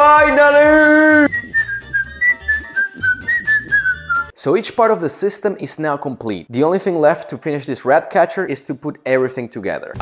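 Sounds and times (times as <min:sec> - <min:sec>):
person whistling a tune: 0:01.1 - 0:04.4
light steady beat: 0:01.2 - 0:04.4.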